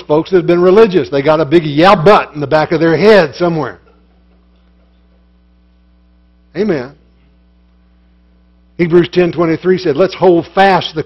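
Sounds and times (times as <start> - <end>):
man speaking: 0.0 - 3.8, 6.5 - 7.0, 8.8 - 11.0
electrical mains hum: 0.0 - 11.0.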